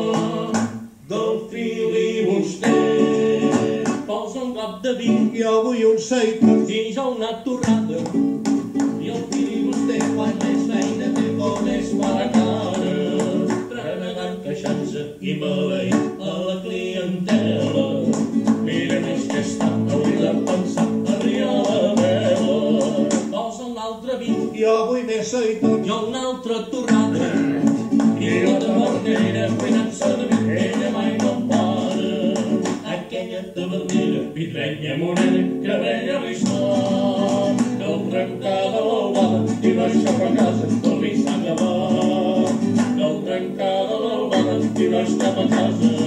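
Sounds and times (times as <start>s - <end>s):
acoustic guitar strumming: 0.0s - 23.5s, 24.1s - 46.0s
man singing: 0.0s - 46.0s.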